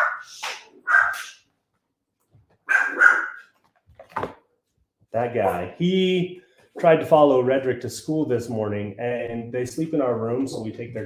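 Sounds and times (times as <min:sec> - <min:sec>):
dog barking indoors: 0:00.0 - 0:01.5, 0:02.6 - 0:03.8.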